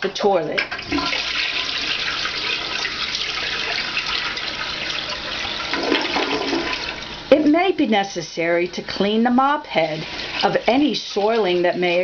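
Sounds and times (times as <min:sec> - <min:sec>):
toilet flushing: 0:00.0 - 0:12.0.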